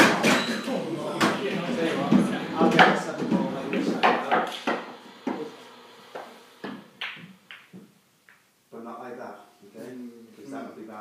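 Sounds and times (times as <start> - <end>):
pool balls clicking: 0.0 - 5.5, 6.1 - 8.5.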